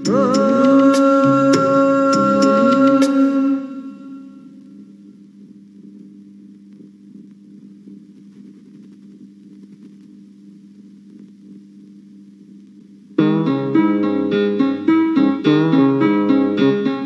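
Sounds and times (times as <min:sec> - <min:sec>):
background music: 0:00.0 - 0:04.3, 0:13.2 - 0:17.0
faint low hum with hiss: 0:00.0 - 0:17.0.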